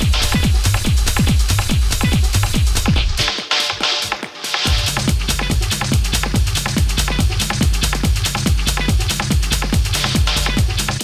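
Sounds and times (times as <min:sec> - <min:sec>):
techno dj mix: 0:00.0 - 0:11.0.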